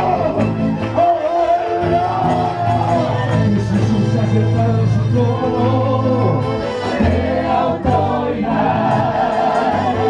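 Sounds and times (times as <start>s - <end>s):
men singing into microphones: 0.0s - 10.0s.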